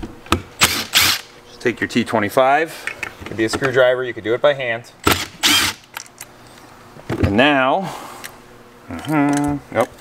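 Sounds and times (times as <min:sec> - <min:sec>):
cordless drill bursts: 0:00.6 - 0:01.3, 0:05.1 - 0:05.9.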